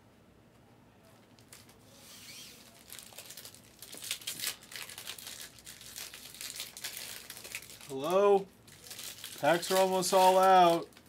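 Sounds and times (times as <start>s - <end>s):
foil packs crinkling: 1.4s - 11.0s.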